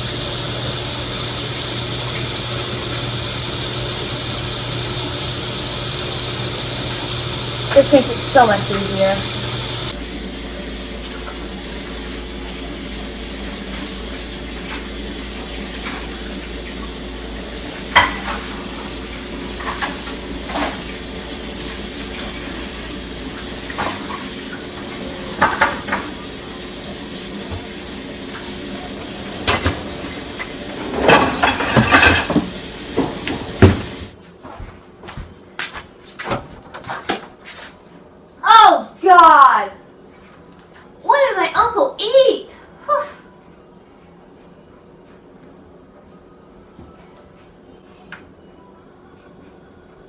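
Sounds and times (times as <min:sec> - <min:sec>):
dishes clinking and clattering: 0:17.9 - 0:18.7, 0:19.5 - 0:21.6, 0:25.2 - 0:26.2, 0:29.3 - 0:34.0.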